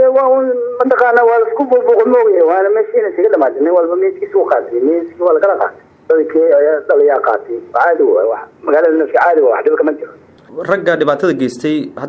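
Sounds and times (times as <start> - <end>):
person talking over a phone line: 0.0 - 10.2.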